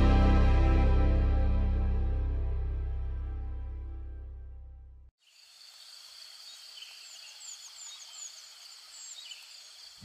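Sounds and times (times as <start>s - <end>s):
steady high-pitched hiss: 5.2s - 10.0s
small birds chirping: 5.3s - 10.0s.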